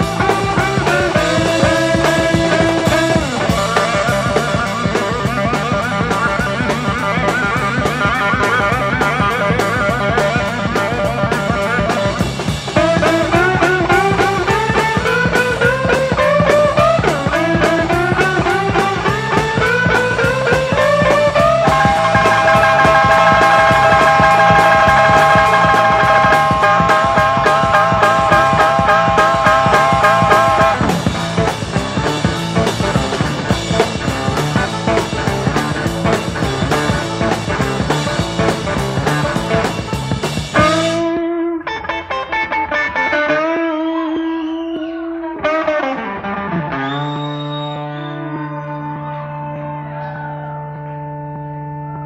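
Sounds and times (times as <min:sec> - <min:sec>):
drum and bass beat: 0:00.0 - 0:51.7
electric blues band playing: 0:00.0 - 0:52.0
lead guitar wavering notes: 0:00.0 - 0:52.0.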